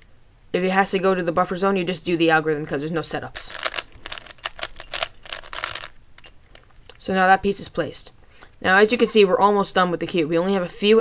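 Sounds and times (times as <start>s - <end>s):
plastic puzzle cube clicking: 3.5s - 6.4s.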